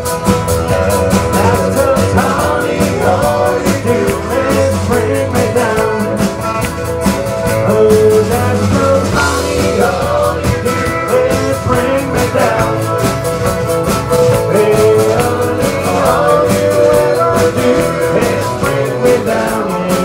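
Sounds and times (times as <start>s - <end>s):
country band playing: 0.0s - 20.0s.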